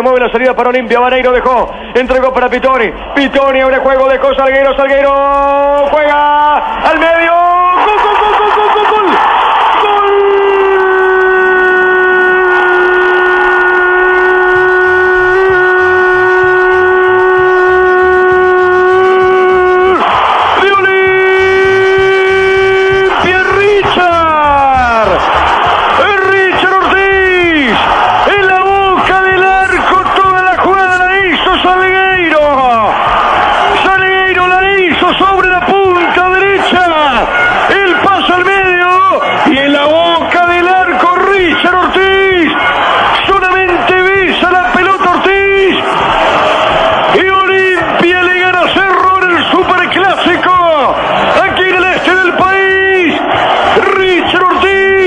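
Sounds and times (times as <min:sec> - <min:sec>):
commentator shouting goal on radio: 0:00.0 - 0:55.0.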